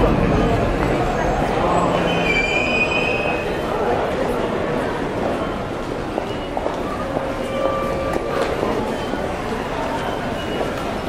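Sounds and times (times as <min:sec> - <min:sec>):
street and station noise: 0:00.0 - 0:11.0
high brake squeal: 0:01.2 - 0:03.7, 0:05.4 - 0:11.0.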